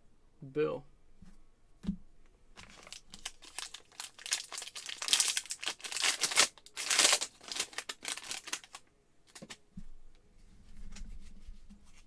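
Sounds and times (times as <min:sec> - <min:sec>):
foil wrapper crinkling: 0:02.6 - 0:09.4.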